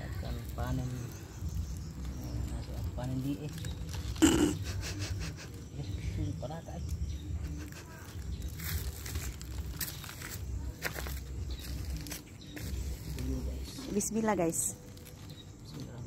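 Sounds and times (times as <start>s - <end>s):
stiff leaves rustling and scraping: 0.0s - 16.0s.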